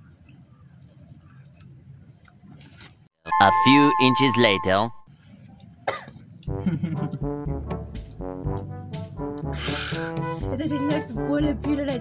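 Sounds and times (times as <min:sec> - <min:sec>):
held musical note: 0:03.3 - 0:05.0
person coughing: 0:05.9 - 0:06.2.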